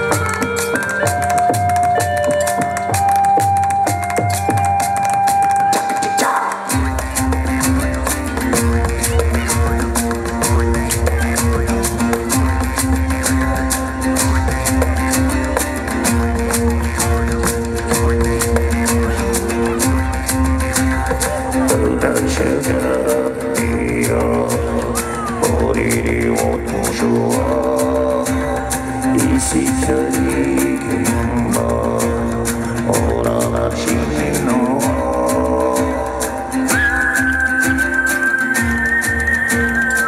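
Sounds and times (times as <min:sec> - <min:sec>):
acoustic guitar strumming: 0:00.0 - 0:40.0
cymbal and drum pattern: 0:00.0 - 0:40.0
sliding melodic lines: 0:00.0 - 0:40.0.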